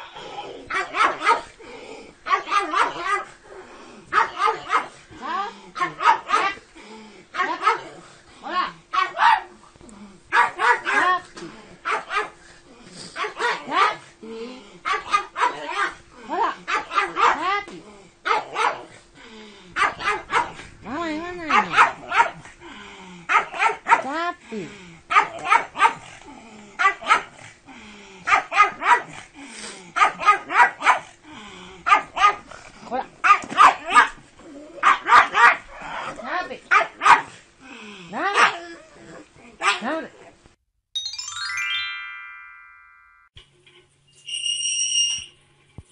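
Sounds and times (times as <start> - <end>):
dog barking sharply: 10.3 - 11.0, 21.5 - 22.4, 30.0 - 31.0, 33.2 - 34.1, 34.8 - 35.6, 36.7 - 37.3.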